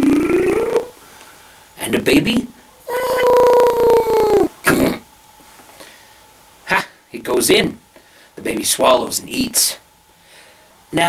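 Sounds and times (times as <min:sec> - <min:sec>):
man imitating airplane noise: 0:00.0 - 0:01.0, 0:02.9 - 0:05.0.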